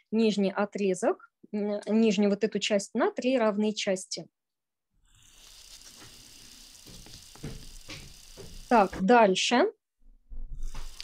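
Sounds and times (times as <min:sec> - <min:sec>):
room noise hiss: 0:05.1 - 0:09.0.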